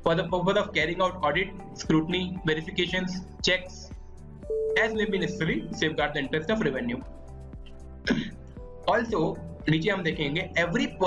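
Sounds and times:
soft background music: 0:00.0 - 0:11.0
man clearing throat: 0:08.1 - 0:08.4.

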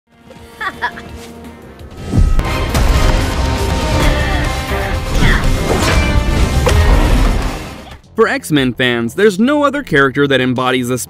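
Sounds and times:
dramatic action music: 0:01.4 - 0:09.1
crashing impact sound effects: 0:02.0 - 0:07.9.

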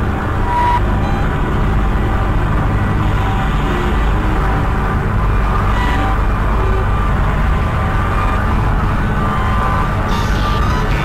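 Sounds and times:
dense rumbling noise music: 0:00.0 - 0:11.0.

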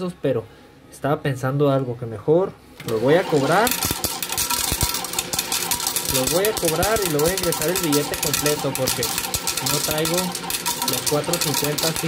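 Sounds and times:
small motor running: 0:02.9 - 0:12.0
coins dropping into tray: 0:03.7 - 0:12.0.

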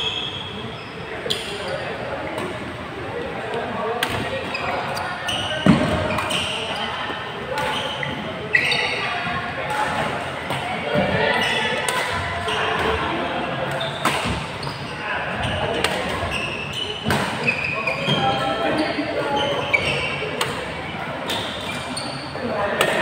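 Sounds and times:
players' voices: 0:00.0 - 0:23.0
shoe squeaks on court: 0:04.2 - 0:09.2, 0:13.8 - 0:20.3, 0:21.3 - 0:22.4.

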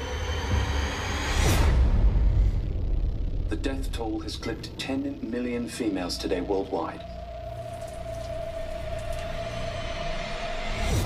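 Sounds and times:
low rumbling drone: 0:00.0 - 0:11.0
steady held tone: 0:02.2 - 0:11.0.

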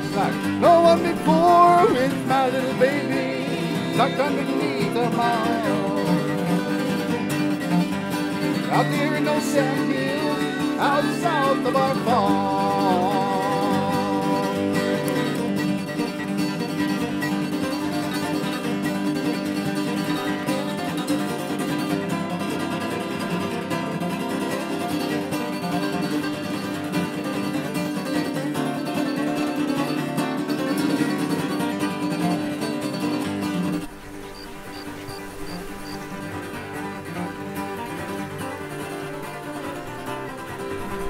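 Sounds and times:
acoustic guitars playing country: 0:00.0 - 0:41.0.

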